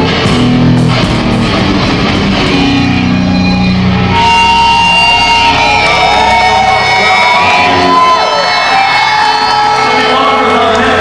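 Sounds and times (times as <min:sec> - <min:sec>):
electric guitar feedback: 0:00.0 - 0:11.0
crowd shouting: 0:02.7 - 0:11.0.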